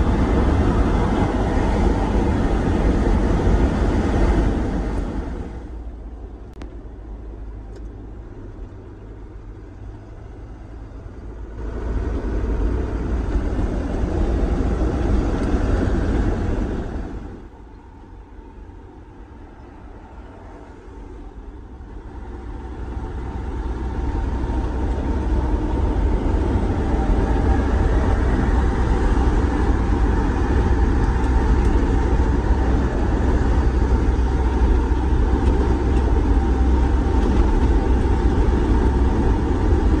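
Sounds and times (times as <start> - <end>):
engine and road rumble: 0.0 - 40.0.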